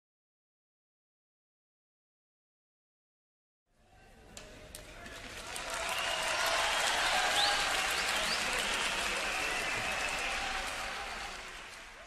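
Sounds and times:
audience applause: 5.1s - 12.0s.

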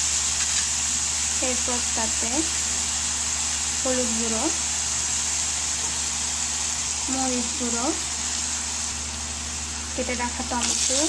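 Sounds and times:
low steady hum: 0.0s - 11.0s
onions frying in oil: 0.0s - 11.0s.

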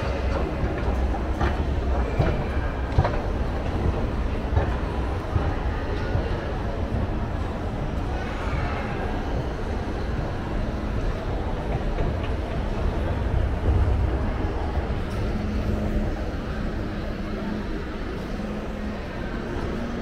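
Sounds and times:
escalator mechanical rumble: 0.0s - 20.0s
indoor mall background noise: 0.0s - 20.0s.

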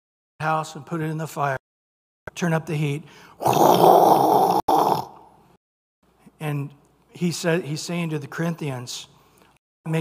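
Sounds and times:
man imitating fire flaring: 3.4s - 5.2s.

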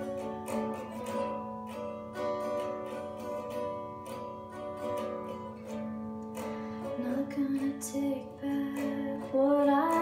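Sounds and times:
guitar playing sustained chords: 0.0s - 10.0s.

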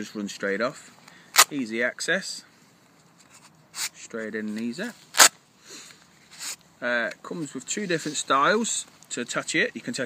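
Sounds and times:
fabric case rasp: 6.3s - 6.6s.

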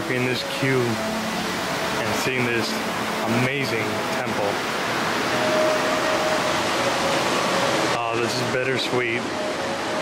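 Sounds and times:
water cascading over rocks: 0.0s - 10.0s.

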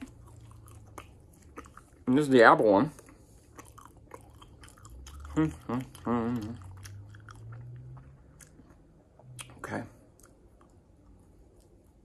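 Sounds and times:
chewing and soft crunches: 0.0s - 12.0s.

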